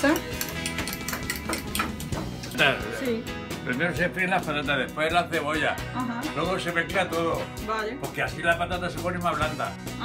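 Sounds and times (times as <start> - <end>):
whisk clicking against bowl: 0.0 - 2.6
background music: 0.0 - 10.0.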